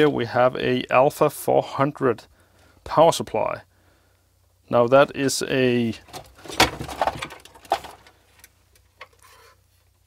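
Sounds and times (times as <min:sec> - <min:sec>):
loose parts rattling: 0:05.9 - 0:09.6
metal chassis clicks and knocks: 0:06.0 - 0:08.1.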